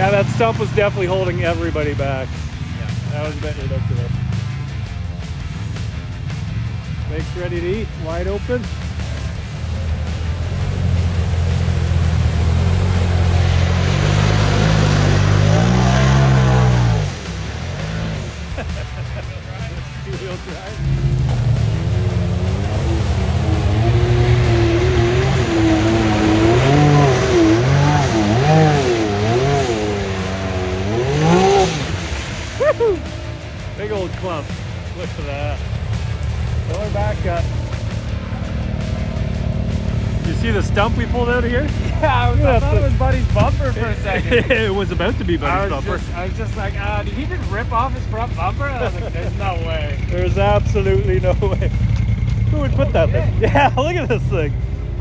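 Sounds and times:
off-road vehicle engines revving: 0.0s - 55.0s.

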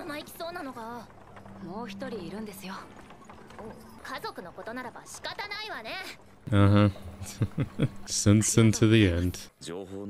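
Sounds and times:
horse hooves clip-clopping: 0.0s - 9.0s.

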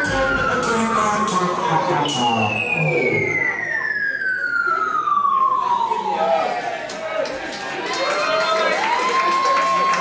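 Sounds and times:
whistle-like falling tone: 0.0s - 6.7s
crowd voices: 0.0s - 10.0s.

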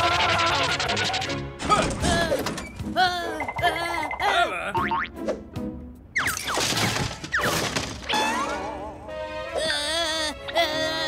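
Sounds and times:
cartoon music: 0.0s - 1.9s, 3.1s - 5.2s.

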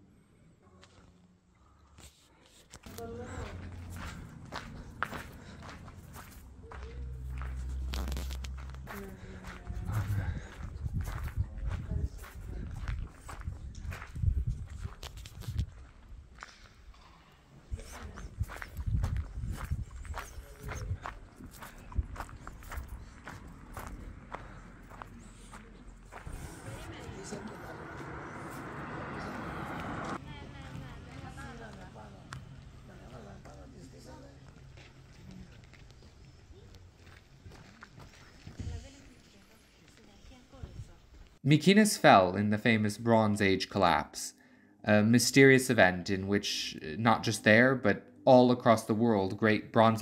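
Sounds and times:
footsteps on gravel: 2.8s - 16.7s, 17.8s - 29.0s, 34.4s - 41.4s.

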